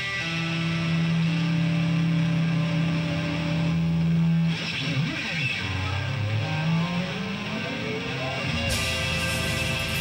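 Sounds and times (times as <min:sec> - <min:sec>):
blues-rock band playing: 0:00.0 - 0:10.0
lap steel guitar sustained note: 0:00.0 - 0:10.0.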